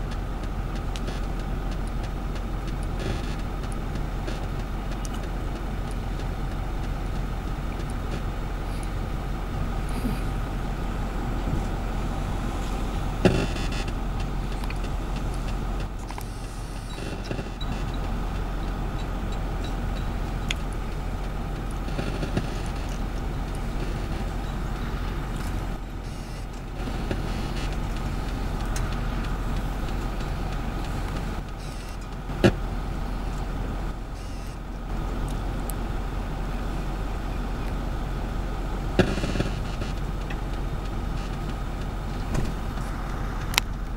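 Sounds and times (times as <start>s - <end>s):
heavy machinery engine drone: 0.0s - 43.9s.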